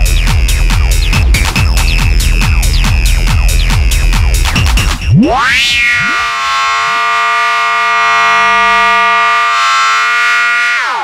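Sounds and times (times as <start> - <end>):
synthesizer chord sweeping in pitch: 5.0 - 11.0.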